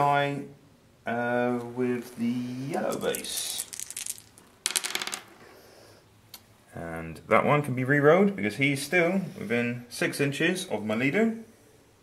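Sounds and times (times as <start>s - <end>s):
dice clattering on a board: 2.9s - 5.3s.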